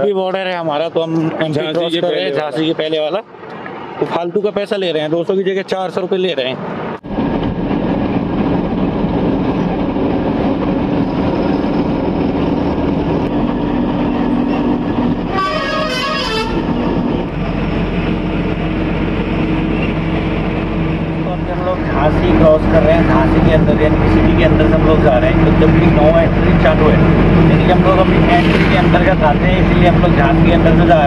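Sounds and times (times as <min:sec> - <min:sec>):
truck engine and road hum: 0:00.0 - 0:31.0
wavering horn: 0:15.1 - 0:16.9.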